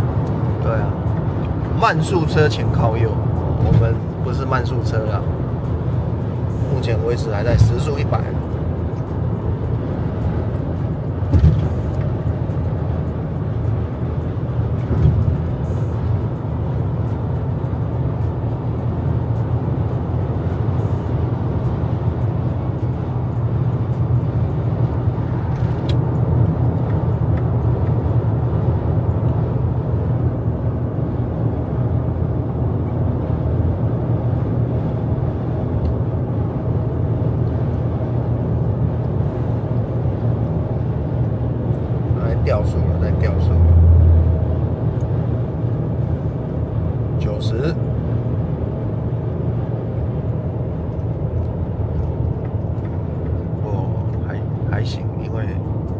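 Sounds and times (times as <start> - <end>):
van engine droning: 0.0 - 55.9.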